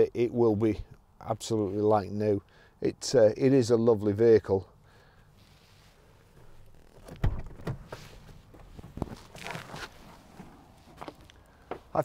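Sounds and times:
rustling of clothing: 0:05.3 - 0:07.2, 0:07.8 - 0:12.0.

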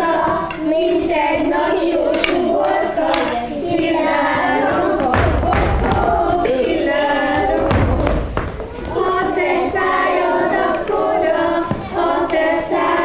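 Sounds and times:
children singing in unison: 0:00.0 - 0:13.0
dull thumps: 0:00.0 - 0:13.0.

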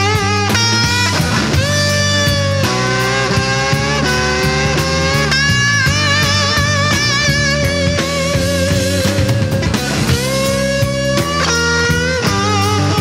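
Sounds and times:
blues electric guitar lead: 0:00.0 - 0:13.0
drums: 0:00.0 - 0:13.0.

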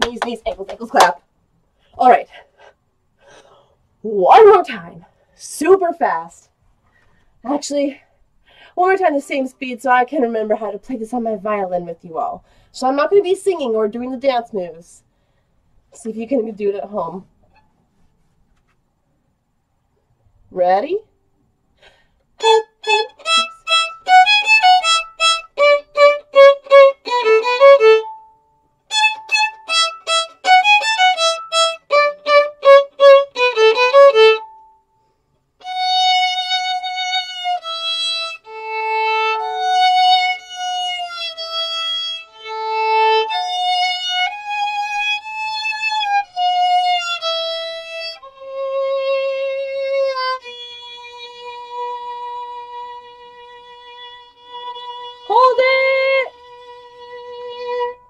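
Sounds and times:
solo violin playing: 0:22.4 - 0:34.8, 0:35.6 - 0:58.0.

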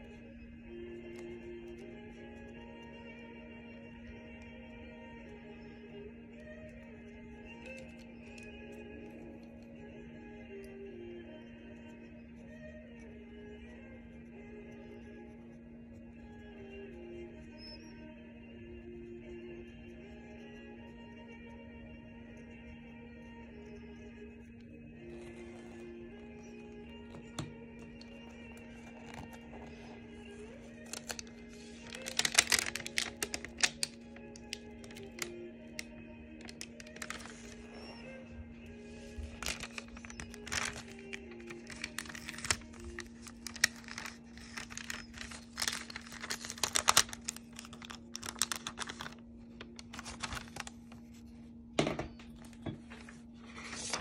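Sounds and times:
soft background music with drone: 0:00.0 - 0:54.0
paper crinkling: 0:26.6 - 0:51.4, 0:52.4 - 0:54.0
masking tape peeling: 0:30.8 - 0:37.7, 0:39.3 - 0:50.7.

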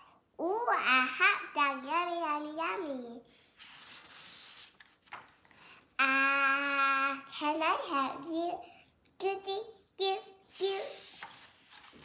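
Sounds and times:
book page turning: 0:03.6 - 0:05.6, 0:10.5 - 0:12.0.

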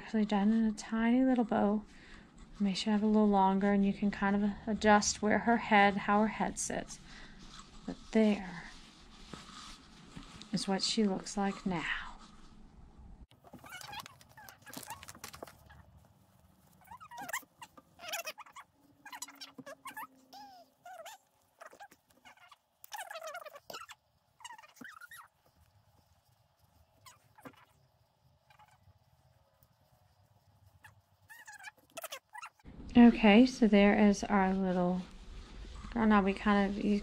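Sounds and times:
fabric rustling: 0:02.0 - 0:12.6, 0:13.3 - 0:32.0, 0:33.0 - 0:37.0
sped-up squeaky voices: 0:16.8 - 0:25.3.

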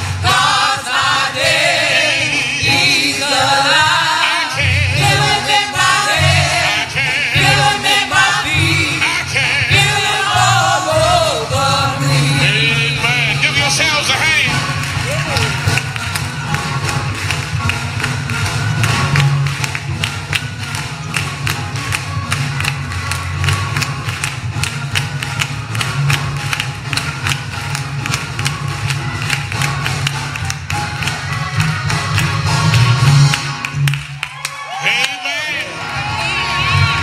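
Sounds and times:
music with strong bass: 0:00.0 - 0:34.2, 0:35.6 - 0:37.0
rhythmic hand clapping: 0:00.0 - 0:37.0.

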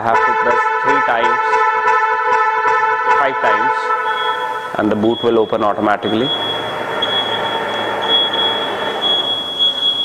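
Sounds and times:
tailgate motor whine: 0:06.1 - 0:10.0.

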